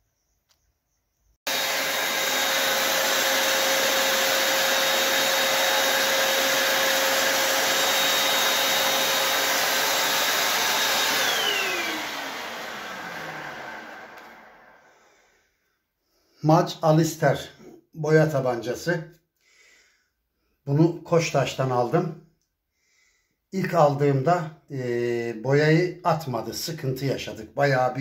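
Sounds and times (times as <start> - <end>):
paint sprayer blower whining: 1.5 - 15.2.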